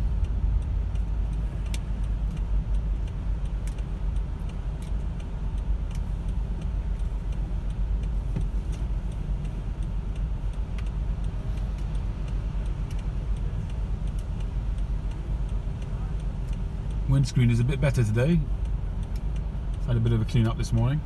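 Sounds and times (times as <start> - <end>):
car engine idling: 0.0 - 21.0
turn indicator ticking: 0.0 - 21.0.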